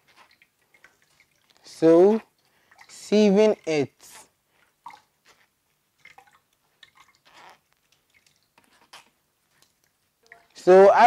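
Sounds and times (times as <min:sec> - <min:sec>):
liquid dripping through a sieve: 0:00.0 - 0:11.0.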